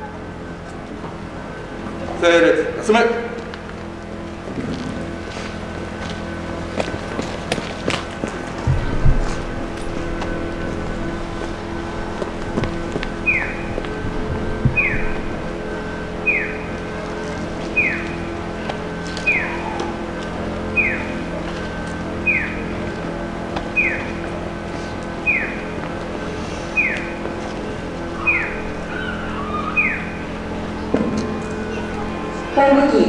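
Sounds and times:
vehicle engines idling: 0.0 - 33.0
crossing signal chirp: 8.6 - 33.0.

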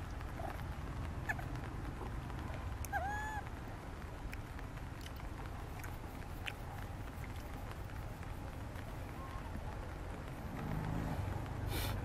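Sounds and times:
faint ticks: 0.0 - 12.0
low outdoor rumble: 0.0 - 12.0
small rustles: 0.0 - 12.0.

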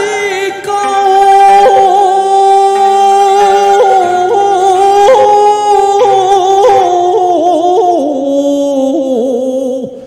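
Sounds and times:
man chanting poetry into microphone: 0.0 - 10.0.

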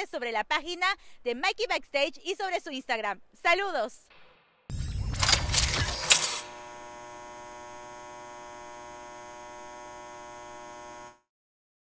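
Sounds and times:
neon sign electrical hum: 4.7 - 11.2.

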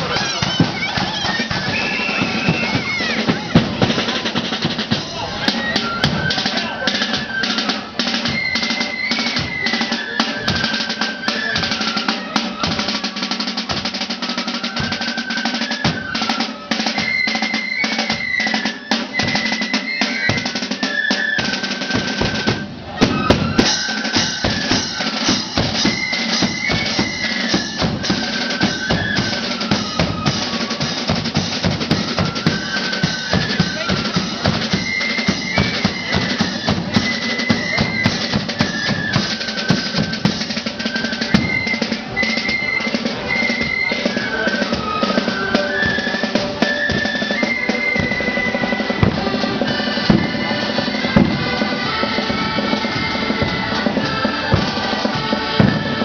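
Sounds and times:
flutes playing melody: 0.0 - 56.0
rattling side drums: 0.0 - 56.0.

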